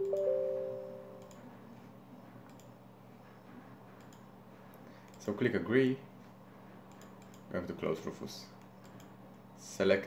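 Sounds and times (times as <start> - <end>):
three-note system chime: 0.0 - 1.2.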